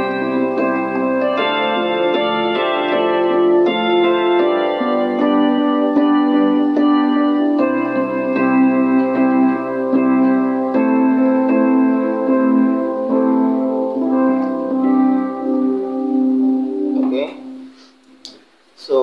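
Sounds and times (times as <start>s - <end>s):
electronic keyboard chords: 0.0s - 18.5s.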